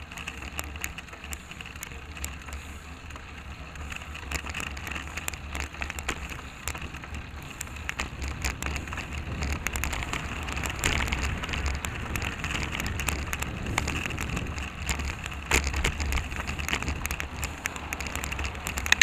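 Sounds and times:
road noise: 0.0s - 19.0s
small rattling clicks: 0.0s - 19.0s
wind rushing over microphone: 5.9s - 19.0s.

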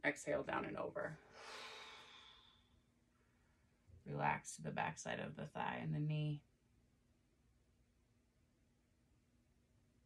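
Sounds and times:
soft exhaled breath: 1.2s - 2.8s.

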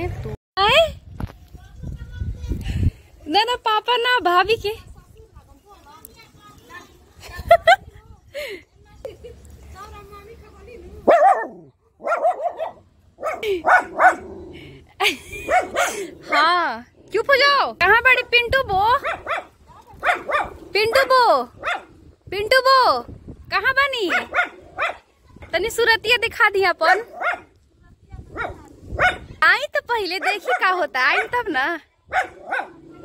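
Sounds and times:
dog barking: 11.0s - 14.4s, 15.4s - 16.4s, 19.0s - 22.0s, 24.1s - 25.1s, 26.8s - 27.6s, 28.3s - 29.4s, 30.2s - 31.5s, 32.1s - 33.0s.

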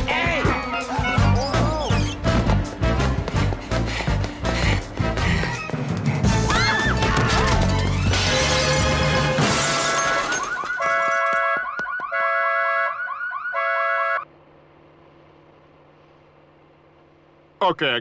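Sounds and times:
loud music with crashing: 6.3s - 10.2s.

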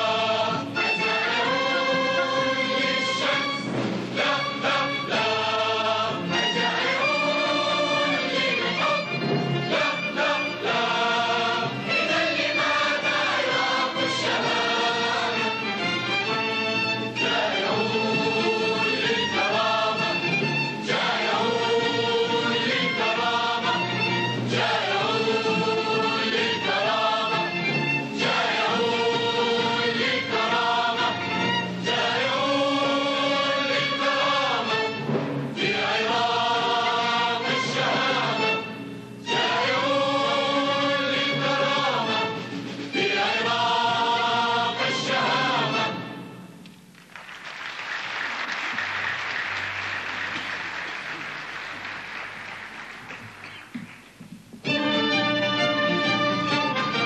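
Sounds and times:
large choir singing: 0.0s - 46.4s.

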